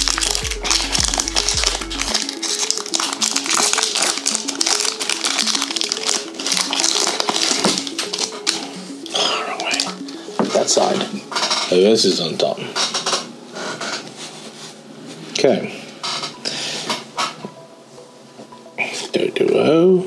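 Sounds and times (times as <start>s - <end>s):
foil wrapper crinkling and tearing: 0.0s - 10.0s
background music: 0.0s - 20.0s.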